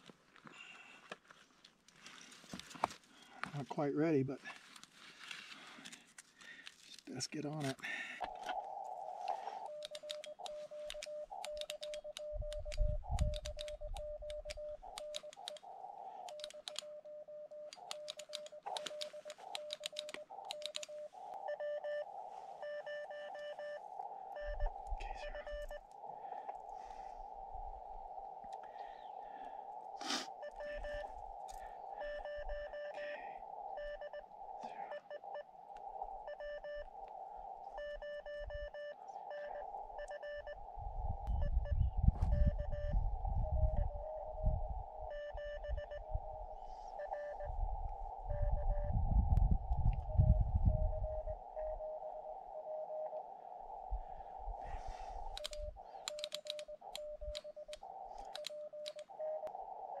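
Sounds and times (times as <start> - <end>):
receiver hiss: 7.1 - 60.0
morse code beeps: 9.6 - 25.9, 30.3 - 31.2, 32.0 - 33.0, 33.7 - 34.3, 34.9 - 35.5, 36.2 - 36.9, 37.7 - 40.7, 41.3 - 47.6, 48.2 - 49.0, 50.0 - 53.2, 55.2 - 60.0
low rumble: 39.9 - 51.9.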